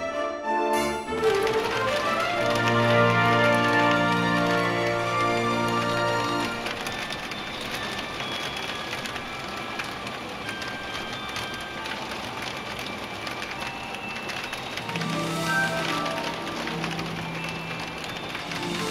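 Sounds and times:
background music: 0.0 - 18.9
steady rain falling: 0.8 - 18.9.

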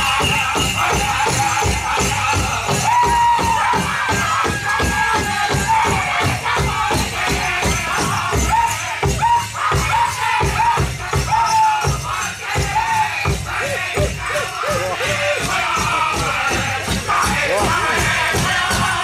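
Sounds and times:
high-pitched group singing: 0.0 - 19.0
large drum fast steady beat: 0.0 - 19.0.

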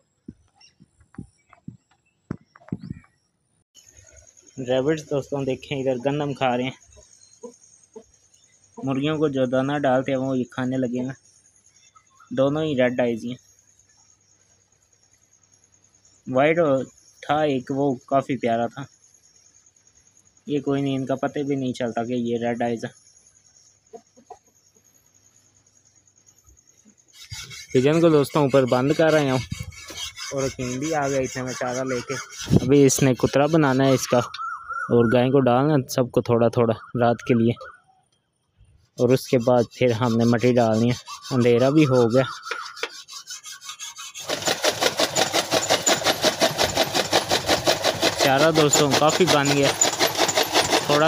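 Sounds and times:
chaff cutter ticking: 39.8 - 51.0
rapid chopping of fodder: 43.7 - 51.0.

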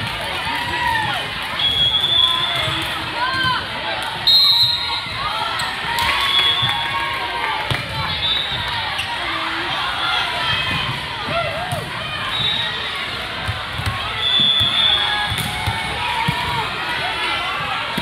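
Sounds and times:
volleyballs thudding: 13.4 - 16.8.

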